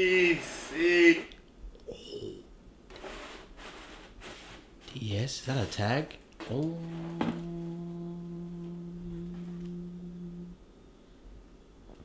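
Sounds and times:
man singing held ooh: 0.0 - 2.4, 6.4 - 10.7.

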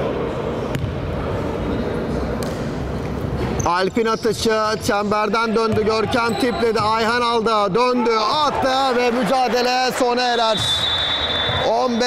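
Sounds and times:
indoor sports hall noise: 0.0 - 12.0.

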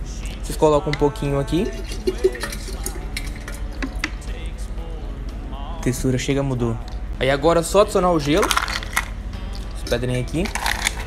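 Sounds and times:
juice pouring into jug: 1.4 - 4.2
ice clicking: 1.6 - 4.2, 8.3 - 9.1, 9.8 - 11.0.

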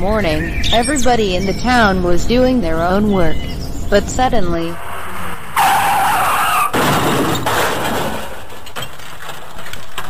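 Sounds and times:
cartoon tyres screeching: 4.7 - 9.0
loud car crash: 4.8 - 10.0.

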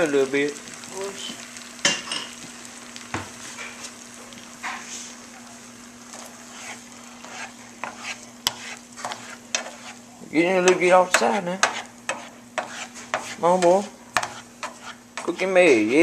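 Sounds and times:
eggs sizzling in a frying pan: 0.0 - 16.0
utensil scraping and knocking pan: 6.1 - 10.0, 10.6 - 16.0.

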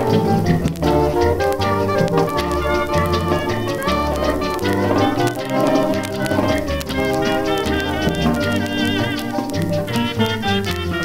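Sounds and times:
dance band playing rumba: 0.0 - 11.0.

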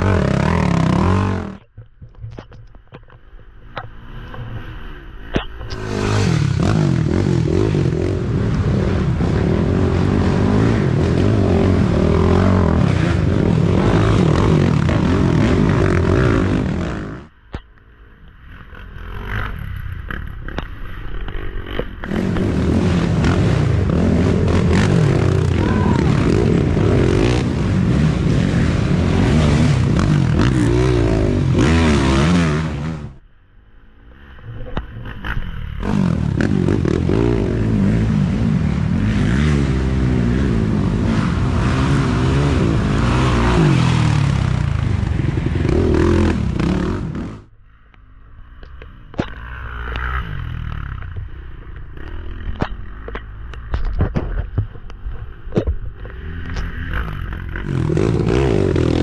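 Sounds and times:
atv engines revving: 0.0 - 1.7, 3.0 - 17.4, 18.1 - 33.2, 34.0 - 47.5, 48.4 - 59.0.

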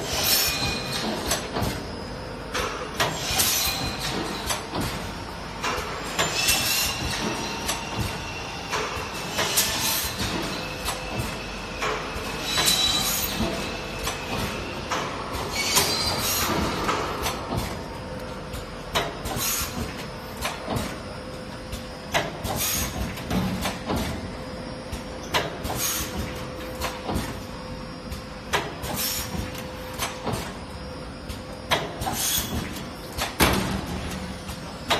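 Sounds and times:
steady mechanical noise: 0.0 - 34.9
pneumatic air hiss: 3.0 - 4.3, 6.1 - 14.6, 15.4 - 17.7, 19.2 - 20.5, 22.4 - 23.1, 25.6 - 27.2, 28.8 - 30.4, 31.8 - 32.8.

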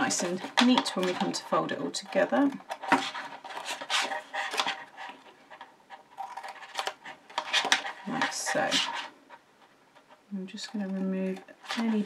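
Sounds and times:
paper handling: 0.0 - 9.2.

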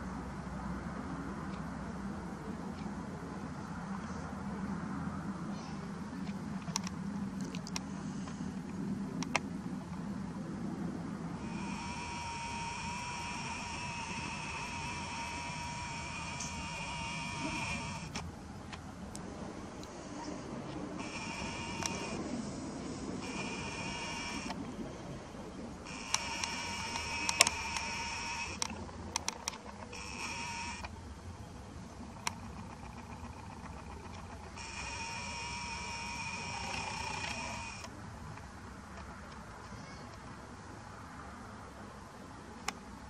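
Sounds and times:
sharp clicks: 6.2 - 10.0, 11.4 - 20.0, 20.7 - 22.4, 23.0 - 24.8, 25.8 - 31.0, 32.0 - 39.4
camera zoom motor whining: 11.4 - 18.3, 21.0 - 24.6, 25.8 - 31.0, 32.0 - 37.9.

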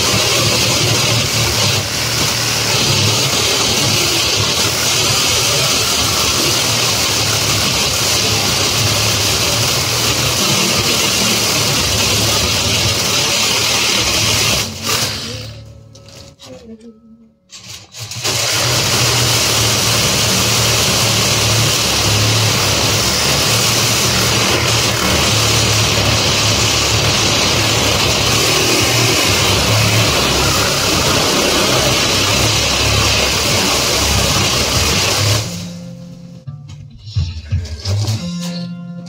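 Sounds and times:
reciprocating saw cutting wire: 0.0 - 16.6, 17.5 - 35.8.

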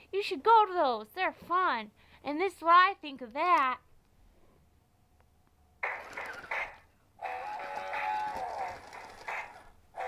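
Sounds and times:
toy speaker playing sound clip: 5.9 - 10.0.

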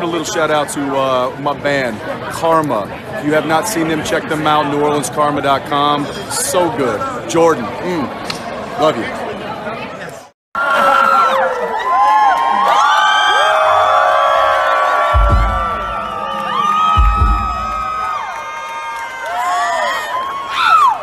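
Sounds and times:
crowd cheering and whooping: 10.6 - 21.0
deep rumbles: 15.2 - 16.2.

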